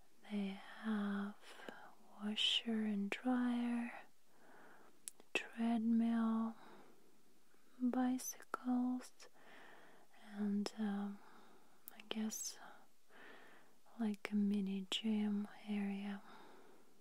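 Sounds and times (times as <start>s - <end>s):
woman whispering: 0.2s - 4.1s, 5.1s - 6.7s, 7.7s - 9.4s, 10.1s - 11.2s, 11.9s - 12.9s, 13.8s - 16.3s.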